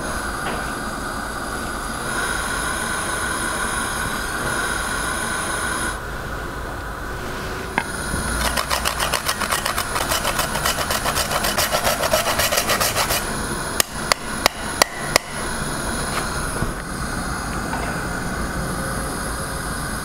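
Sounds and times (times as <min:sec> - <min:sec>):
spice rasping on metal grater: 0:08.2 - 0:13.4.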